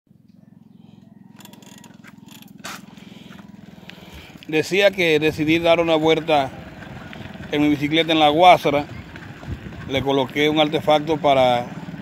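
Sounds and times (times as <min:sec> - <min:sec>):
bicycle rattling on pavement: 0:01.3 - 0:12.0.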